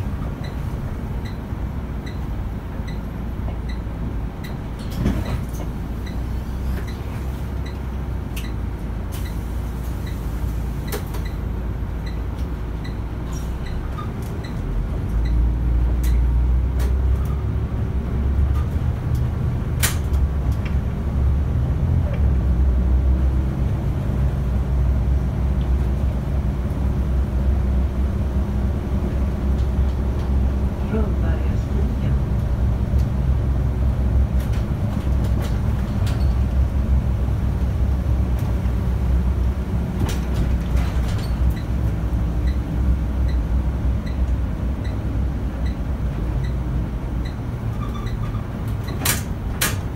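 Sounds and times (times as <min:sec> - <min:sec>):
bus body rattling and knocking: 0:00.0 - 0:49.9
bus engine drone: 0:00.0 - 0:49.9.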